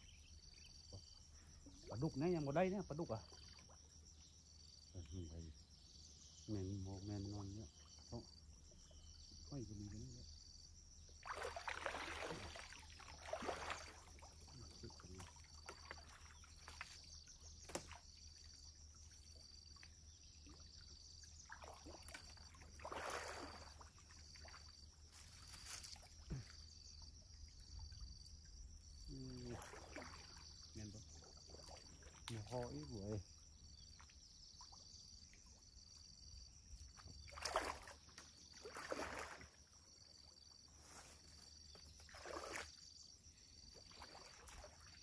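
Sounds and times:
high pulsing insect call: 0:00.0 - 0:45.0
water splashing and sloshing: 0:11.1 - 0:45.0.

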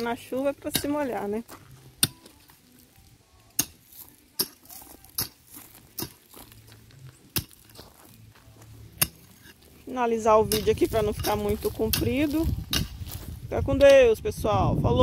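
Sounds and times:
hoe chopping stony ground: 0:00.0 - 0:02.6, 0:03.5 - 0:14.0.

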